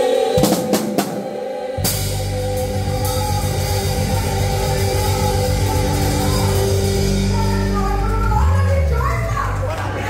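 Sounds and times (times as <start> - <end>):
gospel hymn final chord: 1.8 - 8.1
electric bass note: 1.8 - 10.0
people talking: 2.4 - 10.0.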